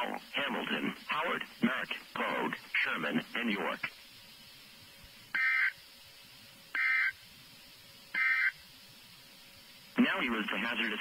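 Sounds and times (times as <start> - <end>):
digital data tone bursts: 5.3 - 5.8, 6.7 - 7.2, 8.1 - 8.6.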